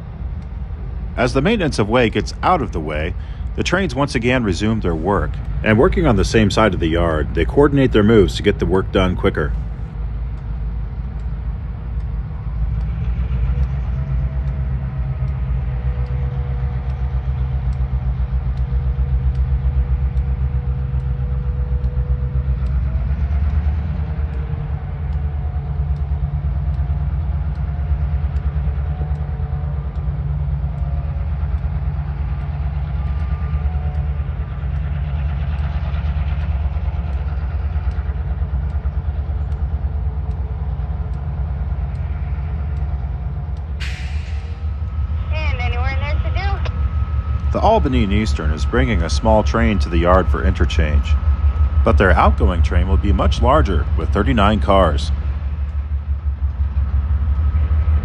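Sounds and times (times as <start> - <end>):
diesel locomotive rumbling: 0.0 - 58.0
faint wavering whines: 0.0 - 58.0.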